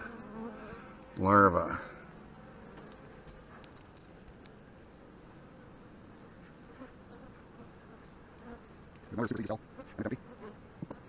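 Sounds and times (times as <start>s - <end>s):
bees buzzing: 0.0s - 11.0s
small ticks: 2.7s - 4.6s.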